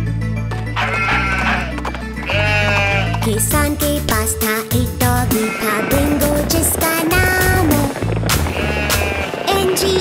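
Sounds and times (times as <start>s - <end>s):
sheep bleating: 0.8s - 3.3s, 5.3s - 6.3s, 8.4s - 9.5s
children's song backing music: 2.3s - 10.0s.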